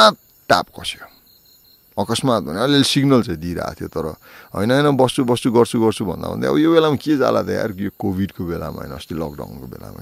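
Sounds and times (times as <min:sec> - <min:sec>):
man talking: 0:00.0 - 0:01.2, 0:02.0 - 0:10.0
faint high steady tone: 0:00.0 - 0:10.0.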